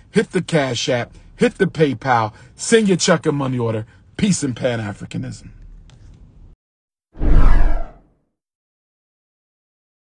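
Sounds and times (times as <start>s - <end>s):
downward whoosh effect: 7.2s - 8.0s.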